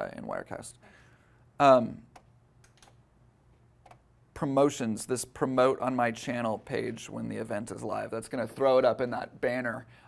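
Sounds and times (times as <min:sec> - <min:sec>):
faint computer clicks: 0:02.1 - 0:03.0, 0:03.8 - 0:04.1.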